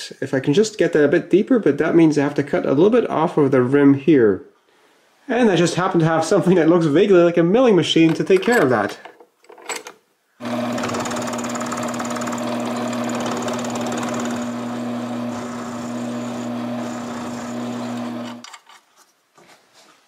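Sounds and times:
milling machine motor hum: 0:10.4 - 0:18.4.

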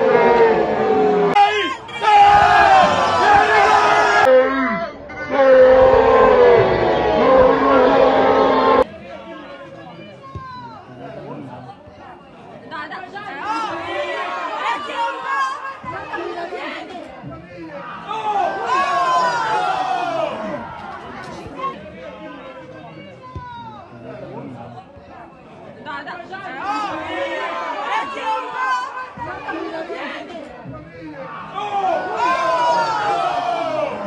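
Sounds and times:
people shouting: 0:00.0 - 0:08.8, 0:13.3 - 0:16.9, 0:17.6 - 0:20.8, 0:26.5 - 0:30.2, 0:31.2 - 0:34.0
people talking and calling out: 0:00.0 - 0:34.0.

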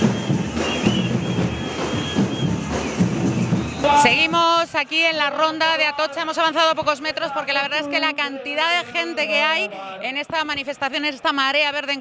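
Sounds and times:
samba drums playing: 0:00.0 - 0:04.8
crowd din: 0:00.0 - 0:05.0.

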